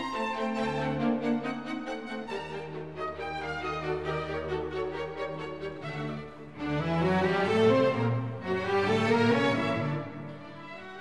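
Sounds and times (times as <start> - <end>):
orchestral music with strings: 0.0 - 11.0.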